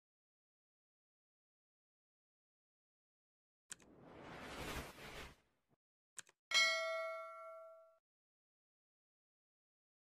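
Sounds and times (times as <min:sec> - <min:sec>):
whoosh: 0:03.7 - 0:05.6
bright bell ding: 0:06.5 - 0:08.0.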